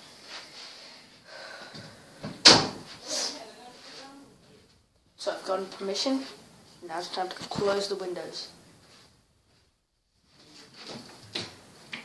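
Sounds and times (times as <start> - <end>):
movement in room: 0.0 - 12.0
door banging shut: 2.4 - 2.9.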